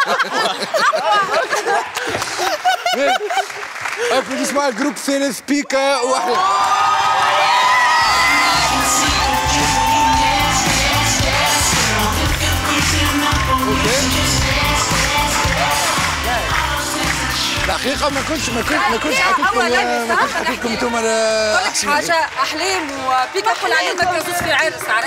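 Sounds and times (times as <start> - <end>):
audience cheering: 6.0 - 17.8
upbeat pop music: 7.8 - 22.8.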